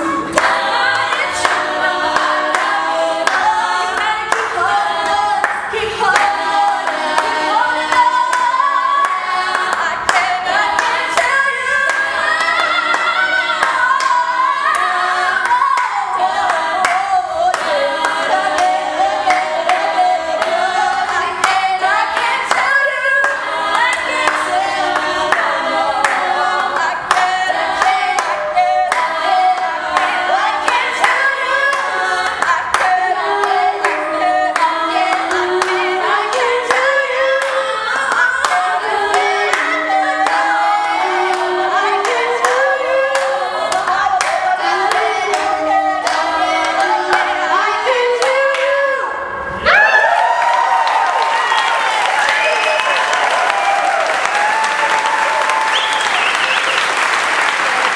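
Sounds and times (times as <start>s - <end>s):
women singing in harmony: 0.0s - 54.6s
audience applause: 49.7s - 57.9s
hand claps: 50.8s - 57.9s.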